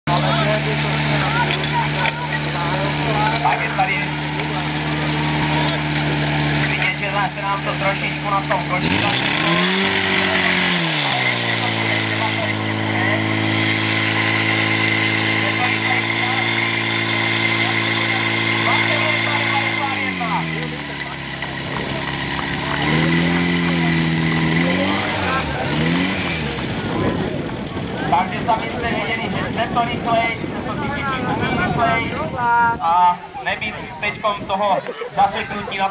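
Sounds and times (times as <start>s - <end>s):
pump engine running: 0.1s - 34.2s.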